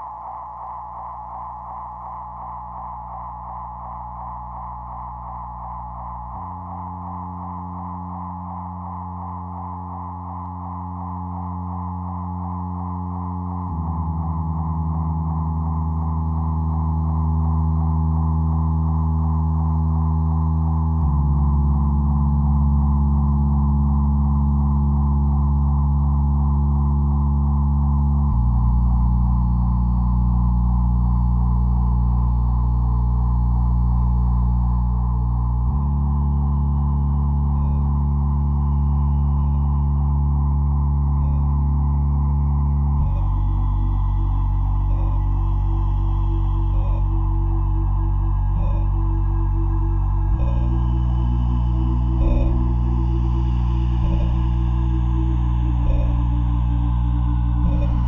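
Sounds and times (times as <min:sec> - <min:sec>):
low drone chords: 0:01.0 - 0:58.0.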